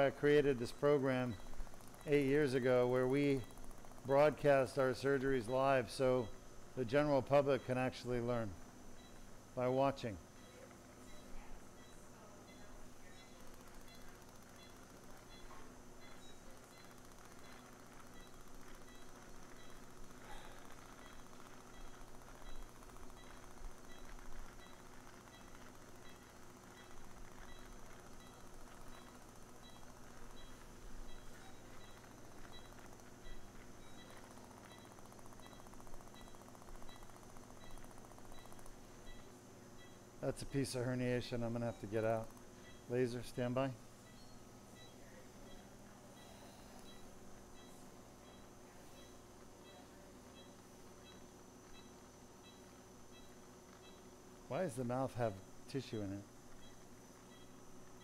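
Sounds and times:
equipment hum: 0:00.0 - 0:58.0
faint high beep: 0:10.4 - 0:40.0, 0:41.4 - 0:54.1.

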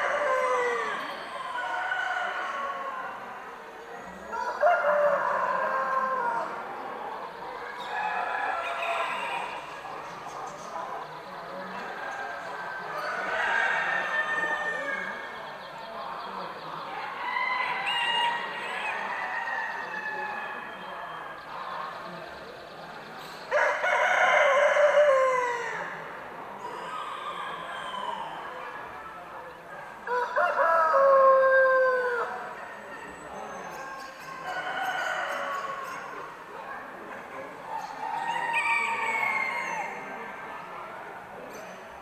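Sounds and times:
roosters crowing: 0:00.0 - 0:03.6, 0:04.2 - 0:06.8, 0:12.4 - 0:15.3, 0:17.0 - 0:20.8, 0:23.5 - 0:28.6, 0:30.0 - 0:33.4, 0:37.8 - 0:40.1
murmur of voices: 0:00.0 - 0:42.0.

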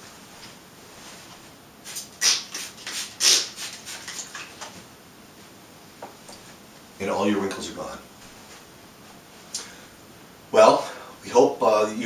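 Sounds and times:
sheet rustling: 0:00.0 - 0:02.7
spray bottle spritzing: 0:01.9 - 0:04.5.

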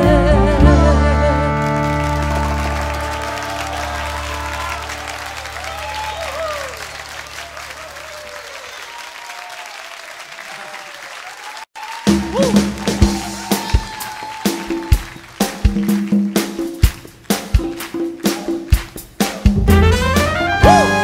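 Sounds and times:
audience applauding: 0:01.5 - 0:21.0
crowd shouting: 0:02.7 - 0:15.0, 0:20.6 - 0:21.0.

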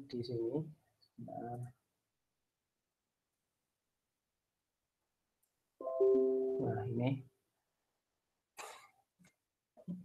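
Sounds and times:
man speaking: 0:00.0 - 0:01.8, 0:06.6 - 0:07.3.

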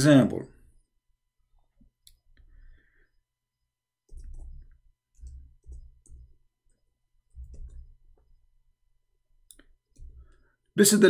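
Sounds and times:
computer keyboard typing: 0:04.0 - 0:08.4, 0:09.5 - 0:10.4.

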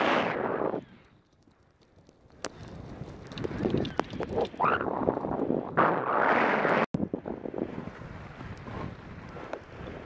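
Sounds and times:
wind buffeting microphone: 0:02.0 - 0:10.0.

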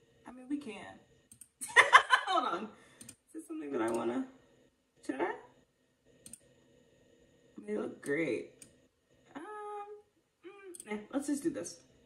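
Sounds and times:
woman's voice: 0:00.3 - 0:01.0, 0:01.7 - 0:02.8, 0:03.4 - 0:04.3, 0:05.1 - 0:05.4, 0:09.3 - 0:11.8.

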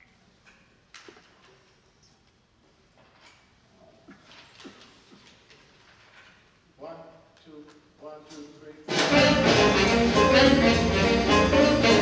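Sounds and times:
jazz big band playing: 0:08.9 - 0:12.0.

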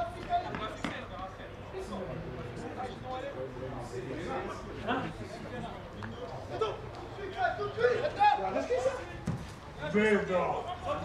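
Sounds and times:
voices calling out and talking: 0:00.0 - 0:11.0.

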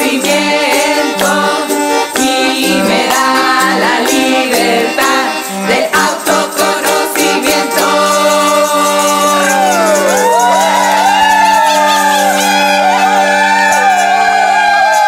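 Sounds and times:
women singing: 0:00.0 - 0:12.0
whooping sliding vocal calls: 0:09.3 - 0:15.0.

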